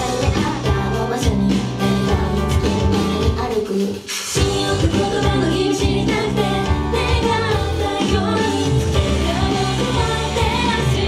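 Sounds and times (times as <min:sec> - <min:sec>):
woman singing into microphone: 0:00.0 - 0:02.6, 0:03.3 - 0:11.0
guitar-driven backing with beat: 0:00.0 - 0:03.8, 0:04.4 - 0:11.0.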